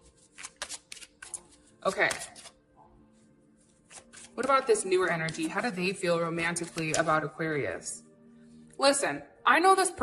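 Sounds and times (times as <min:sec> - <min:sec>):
cards being shuffled: 0:00.0 - 0:02.6, 0:03.8 - 0:05.6, 0:06.6 - 0:07.2.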